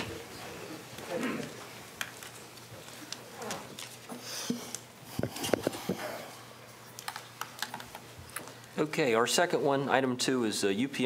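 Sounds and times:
faint room noise: 0.0s - 11.0s
man speaking: 8.8s - 11.0s.

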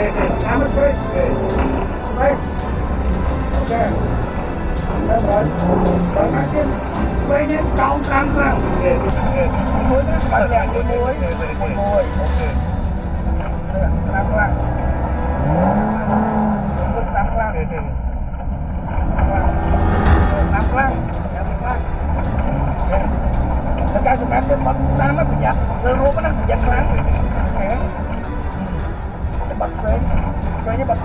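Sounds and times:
voices talking: 0.0s - 17.9s, 19.1s - 31.0s
car engine rumble inside cabin: 0.0s - 31.0s.

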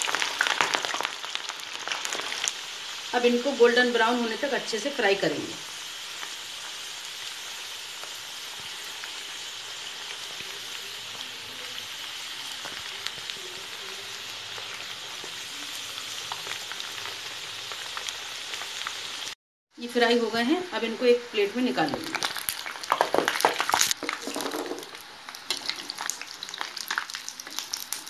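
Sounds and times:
potatoes sizzling in hot oil: 0.0s - 28.0s.

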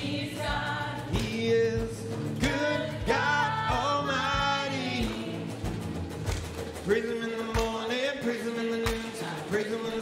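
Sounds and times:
worship band music: 0.0s - 10.0s
person singing: 1.0s - 5.5s.

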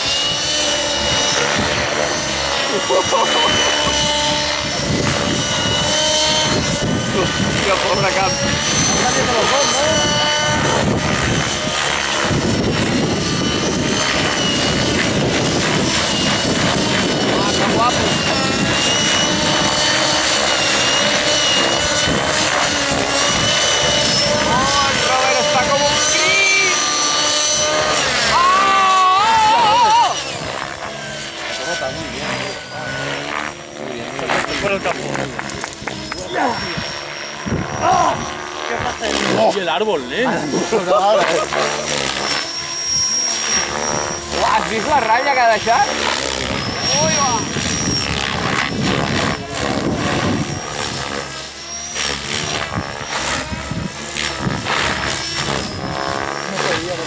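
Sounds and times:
model helicopters whining: 0.0s - 57.0s.

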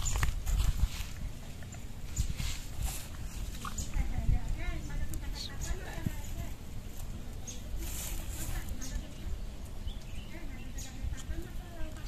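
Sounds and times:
hooves scuffing on ground: 0.0s - 4.5s.

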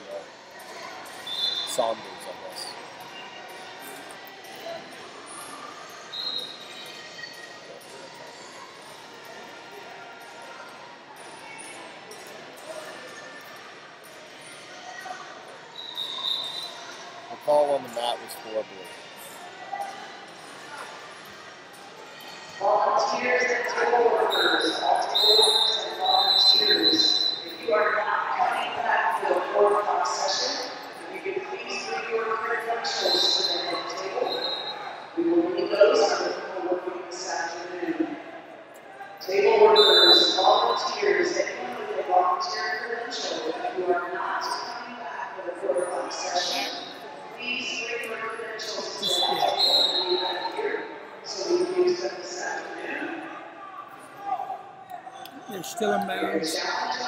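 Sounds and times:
indistinct voices in echoing hall: 0.0s - 57.0s.

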